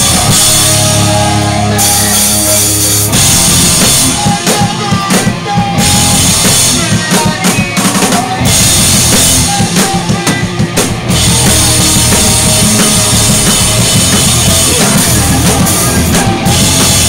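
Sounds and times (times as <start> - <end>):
hard-hit drum strikes: 0.0 - 17.0
live pop-punk band: 0.0 - 17.0.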